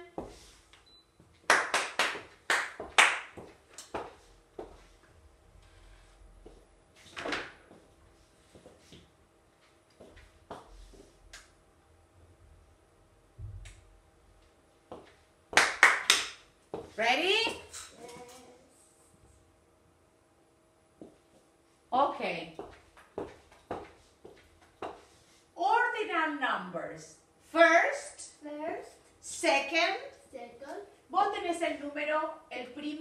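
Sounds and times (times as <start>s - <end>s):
hand clapping in rhythm: 1.5s - 3.4s, 15.6s - 16.4s.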